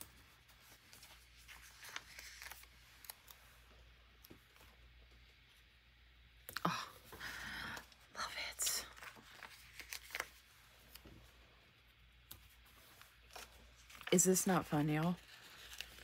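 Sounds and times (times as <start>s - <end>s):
paper rustling: 0.0s - 4.8s, 8.8s - 11.3s, 12.3s - 16.0s.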